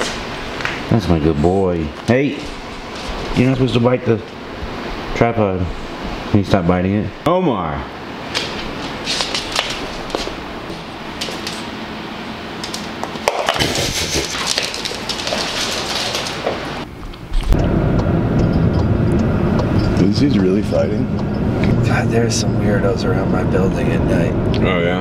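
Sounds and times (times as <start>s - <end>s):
dog claws clicking on wood floor: 11.2s - 11.7s, 12.6s - 16.6s
car cabin low rumble: 17.5s - 24.8s.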